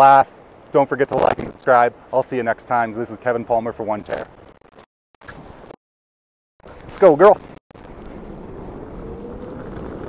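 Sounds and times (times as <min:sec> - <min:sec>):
wheels rolling on pavement: 0:07.8 - 0:10.0
wind on microphone: 0:07.8 - 0:10.0.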